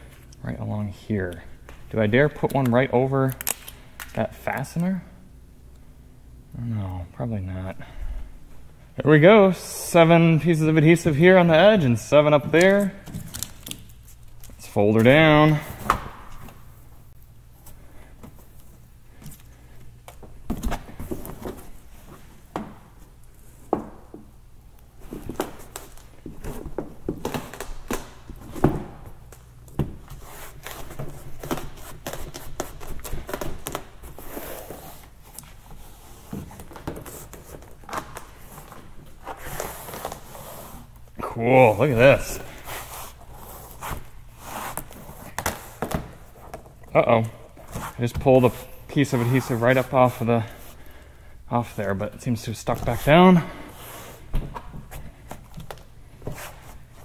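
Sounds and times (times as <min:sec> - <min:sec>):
person speaking: 0:14.5 - 0:15.9, 0:41.2 - 0:42.6, 0:46.9 - 0:50.7, 0:51.5 - 0:53.7
mat rustling and scraping: 0:30.0 - 0:57.0.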